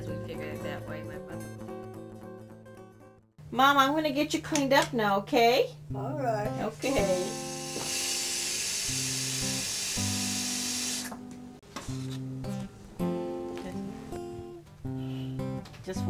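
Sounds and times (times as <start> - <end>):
acoustic guitar music: 0.0 - 3.4, 5.8 - 8.3, 8.9 - 16.0
tap water running into plastic basin: 7.3 - 11.2.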